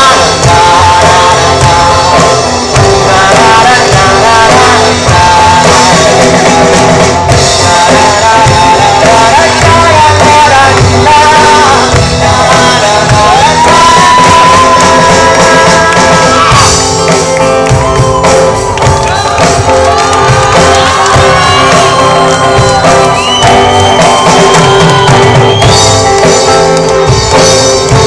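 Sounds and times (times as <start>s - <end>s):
male vocalist singing: 0.0s - 16.8s, 19.0s - 25.6s
bass: 0.0s - 28.0s
drum kit: 0.0s - 28.0s
electric and acoustic guitars: 0.0s - 28.0s.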